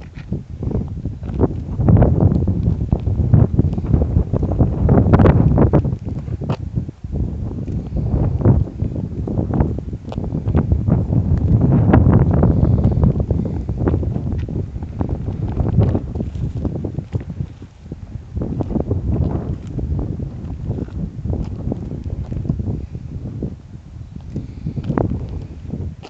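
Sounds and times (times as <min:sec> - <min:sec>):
crackles and rustles: 0:00.0 - 0:23.0
wind buffeting a microphone: 0:00.0 - 0:26.0.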